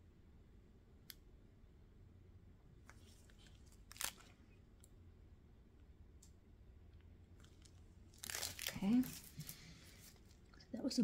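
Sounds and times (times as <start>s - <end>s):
plastic bag crinkling: 3.0s - 4.4s, 7.4s - 10.6s.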